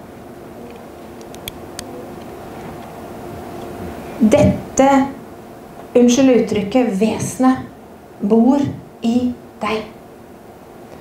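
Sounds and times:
low room hum and hiss: 0.0 - 11.0.

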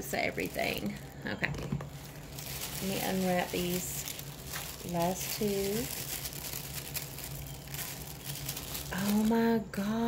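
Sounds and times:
wrapping paper crinkling: 0.0 - 9.7.

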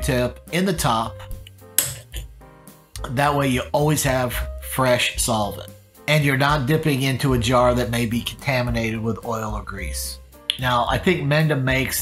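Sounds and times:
soft background music: 0.0 - 12.0
cotton swab clinking metal dish: 1.4 - 2.2.

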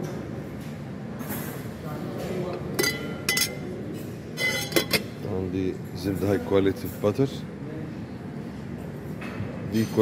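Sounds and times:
glass lid clinking on glass: 2.8 - 3.6.

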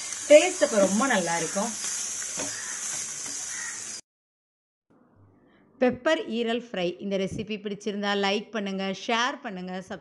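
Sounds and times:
liver sizzling in a pan: 0.0 - 4.0.

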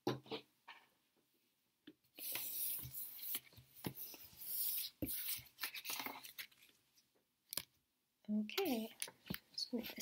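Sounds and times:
playing cards rustling: 2.2 - 6.8.

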